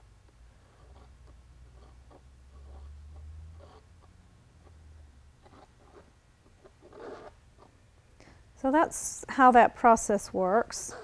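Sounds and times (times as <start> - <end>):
tool scratching through gel: 0.6 - 4.0, 5.4 - 7.7.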